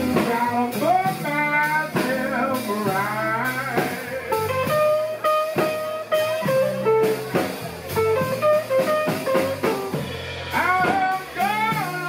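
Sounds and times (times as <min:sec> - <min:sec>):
man singing: 0:00.0 - 0:04.9, 0:10.5 - 0:12.0
drums: 0:00.0 - 0:12.0
electric guitar: 0:00.0 - 0:12.0.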